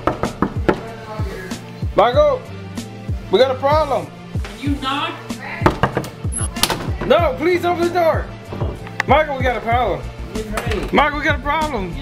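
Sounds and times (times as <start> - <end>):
background music: 0.0 - 12.0
knocks on a door: 5.6 - 7.2.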